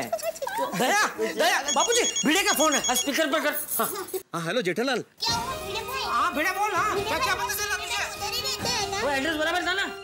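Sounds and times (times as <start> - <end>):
background music: 5.2 - 10.0.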